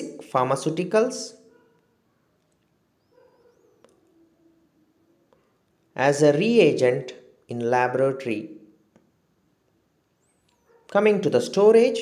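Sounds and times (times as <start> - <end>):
man speaking: 0.0 - 1.4, 6.0 - 8.7, 10.9 - 12.0.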